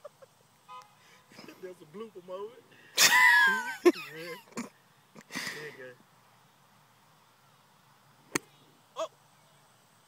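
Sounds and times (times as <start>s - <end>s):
man laughing quietly: 0.0s - 0.6s.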